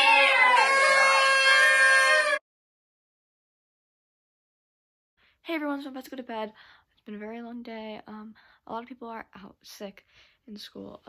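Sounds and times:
paper party horns blaring: 0.0 - 2.4.

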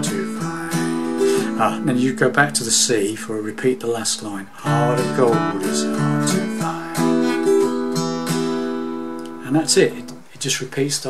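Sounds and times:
acoustic guitar strumming: 0.0 - 10.3.

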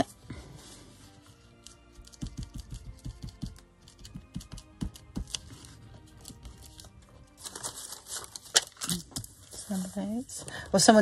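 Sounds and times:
soft background music: 0.0 - 11.0
plastic sticker sheet rustling: 1.2 - 10.2
fingers tapping and rubbing paper: 1.6 - 6.8.

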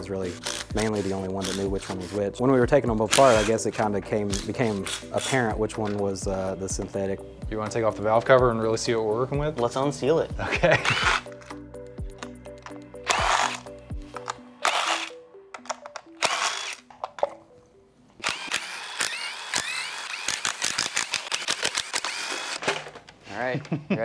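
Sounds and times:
background music: 0.0 - 24.0
power tool whirring: 0.3 - 2.1, 3.1 - 3.6, 10.7 - 11.5, 13.0 - 15.2, 15.9 - 17.2, 18.2 - 23.0.

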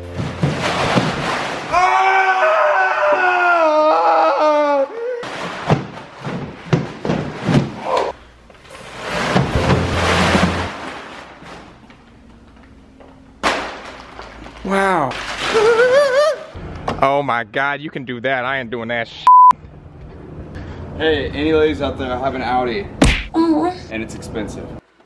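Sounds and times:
thuds and knocks of landing: 0.0 - 1.7, 5.2 - 8.1, 9.1 - 11.7, 23.0 - 23.3
plastic tarp rustling: 0.0 - 1.9, 8.6 - 12.2, 13.4 - 16.1.

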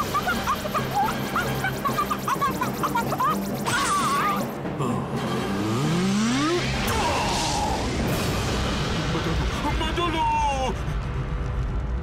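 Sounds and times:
cartoon music: 0.0 - 4.6
rising glide: 0.8 - 9.5.

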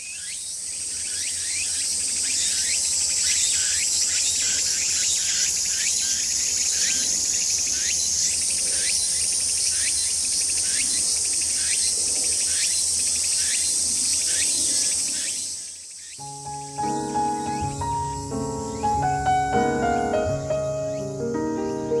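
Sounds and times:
insects buzzing shrilly: 0.0 - 22.0
short rising insect chirp: 0.1 - 22.0.

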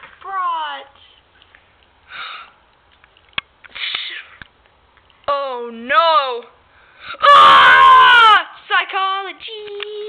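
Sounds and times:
person sniffing: 3.7 - 4.4.

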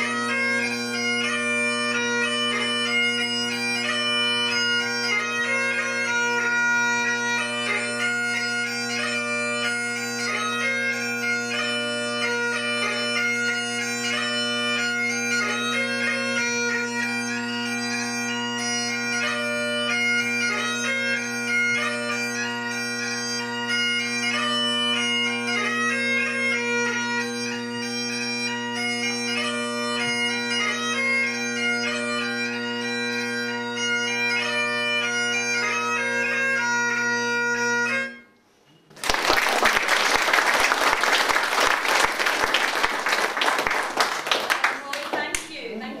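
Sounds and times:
bagpipe music: 0.0 - 45.0
audience applause: 39.0 - 45.5.

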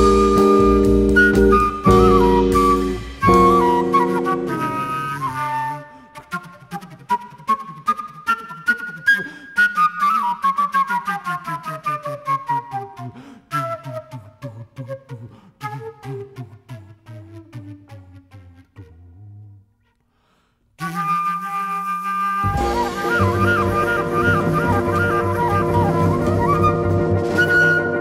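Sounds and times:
jazz band sustained chord: 0.0 - 5.3, 22.5 - 28.0
flute staccato notes: 0.0 - 19.2, 20.8 - 28.0.

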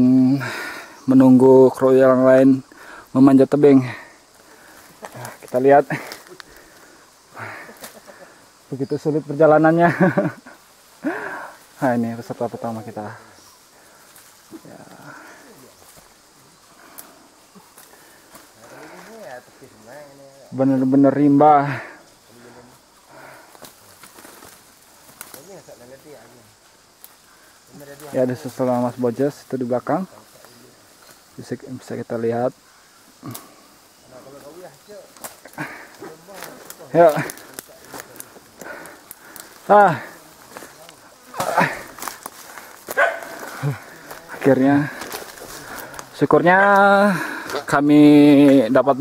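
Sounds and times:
leaf litter and twigs crackling: 0.0 - 49.0
people talking quietly: 0.0 - 49.0
twigs snapping: 4.2 - 7.0, 7.6 - 8.2, 15.8 - 19.2, 23.2 - 25.5, 26.9 - 28.3, 33.1 - 33.6, 34.4 - 47.8.

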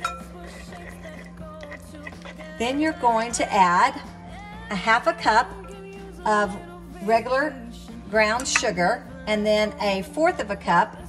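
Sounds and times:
metal spoon clinking in bowl: 0.0 - 1.0
quiet background music: 0.0 - 11.0.

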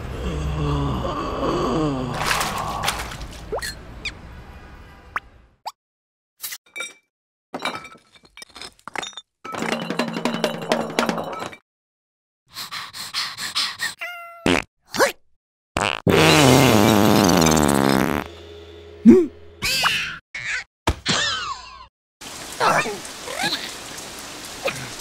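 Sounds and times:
cartoon squeaks: 19.6 - 21.8.

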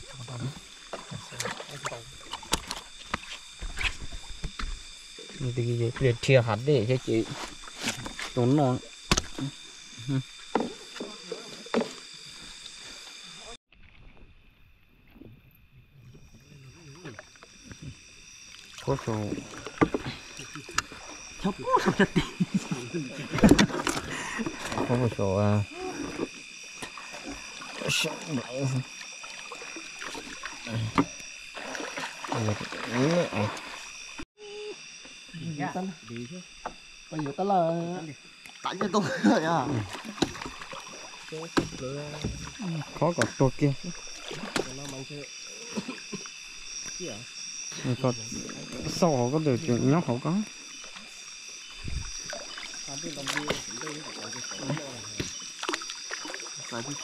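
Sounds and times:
splashes: 0.0 - 4.4, 16.9 - 34.2, 38.4 - 47.1, 47.8 - 57.0
night insects chorus: 0.0 - 57.0
water sloshing and dripping: 17.0 - 34.2, 38.4 - 47.0, 50.4 - 57.0.

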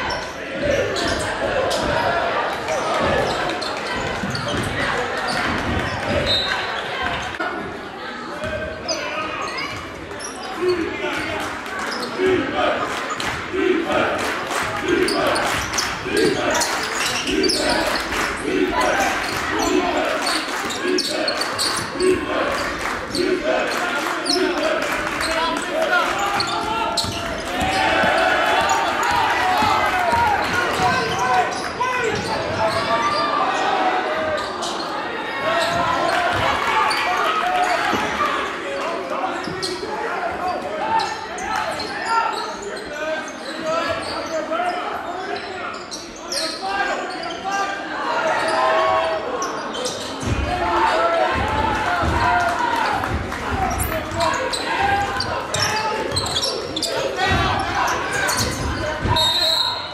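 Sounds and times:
crowd and player voices: 0.0 - 59.9.

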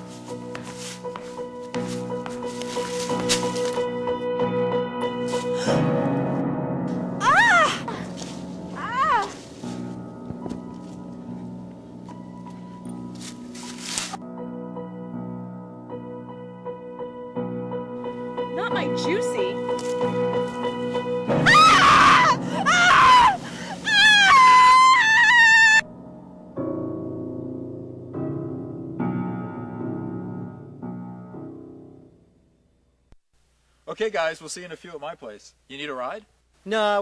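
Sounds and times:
background music: 0.0 - 32.6
woman screaming: 7.2 - 8.0, 8.8 - 9.4, 21.4 - 25.8.

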